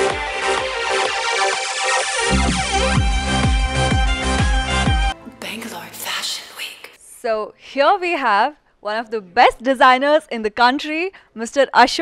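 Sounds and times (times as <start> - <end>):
woman speaking: 5.2 - 12.0.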